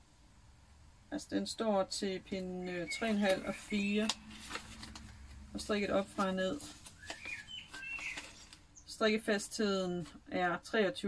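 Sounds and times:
songbirds chirping: 2.0 - 5.0, 5.6 - 10.0.

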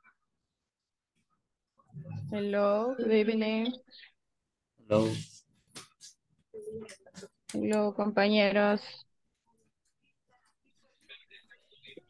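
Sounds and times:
speech over video call: 4.8 - 5.5.

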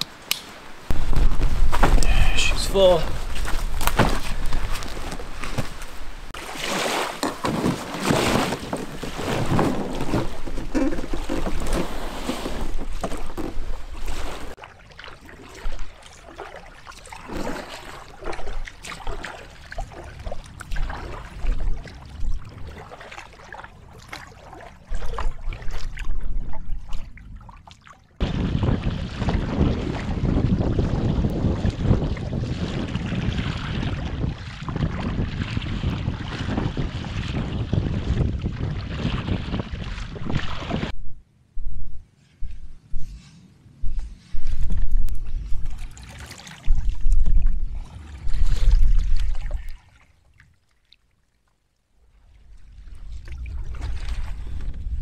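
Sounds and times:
small waves lapping hull: 0.0 - 41.0, 44.2 - 55.0
paddle splashing in water: 0.9 - 41.0, 45.4 - 51.3
wind buffeting microphone: 28.2 - 43.2, 46.7 - 49.7, 52.3 - 55.0.

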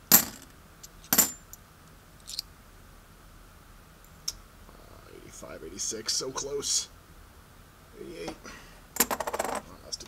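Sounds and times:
coins clinking: 1.0 - 1.5, 9.0 - 9.6.

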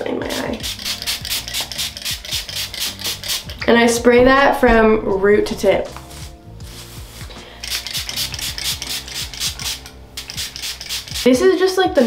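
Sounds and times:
spray bottle short hisses: 0.6 - 3.6, 7.6 - 11.3.

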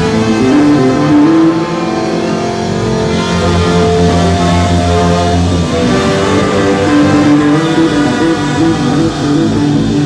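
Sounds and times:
horn section holding notes: 0.0 - 10.0
low held note: 0.0 - 10.0
ska band playing live: 0.0 - 10.0.

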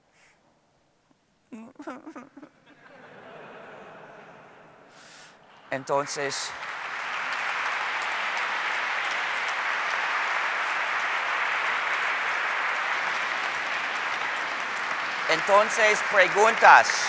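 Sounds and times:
audience applauding: 5.5 - 17.0.

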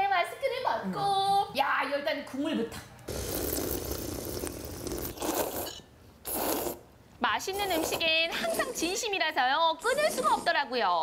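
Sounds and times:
person slurping broth: 3.1 - 6.9.

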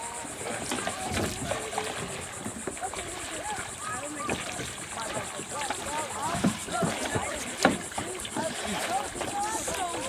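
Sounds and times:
children chattering and calling: 0.0 - 10.0
kayak paddles splashing in water: 0.0 - 10.0
paddle slapping water: 0.0 - 10.0.

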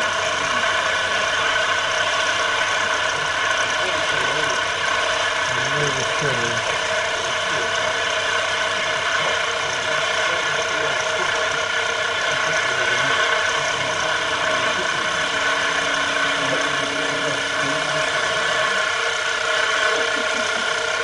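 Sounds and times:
milling cutter cutting metal: 0.0 - 21.0
spindle whine: 0.0 - 21.0.

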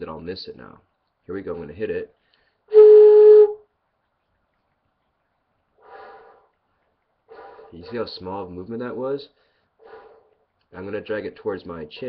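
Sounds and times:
flute single note: 2.7 - 3.6
faint breathy blow: 5.8 - 6.5, 7.3 - 7.8, 9.4 - 10.3.

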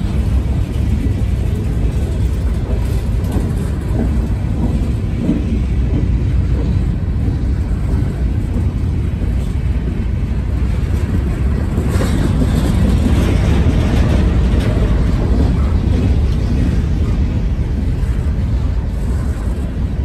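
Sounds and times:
train wheels rumbling on rail: 0.0 - 20.0.

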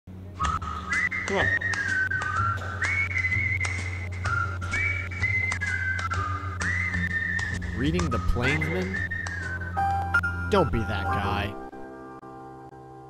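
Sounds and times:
whistled tune: 0.4 - 11.4.

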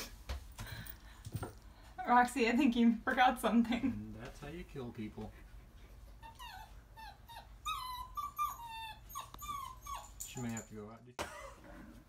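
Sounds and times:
puppy whimpering: 6.2 - 10.4.

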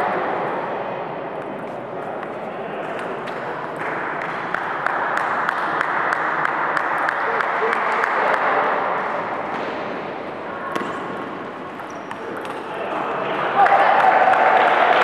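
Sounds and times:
murmur of voices: 0.0 - 15.0
table tennis balls clicking: 11.7 - 12.7.

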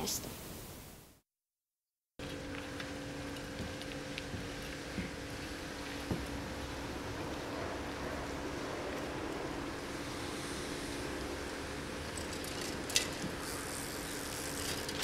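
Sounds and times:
wind: 0.0 - 1.2, 2.2 - 15.0
faint constant hum: 2.2 - 15.0.

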